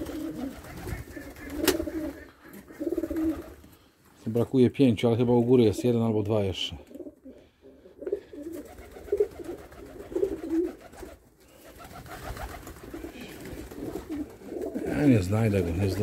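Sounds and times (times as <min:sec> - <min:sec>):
pigeons cooing: 0:00.0 - 0:03.7, 0:06.9 - 0:15.2.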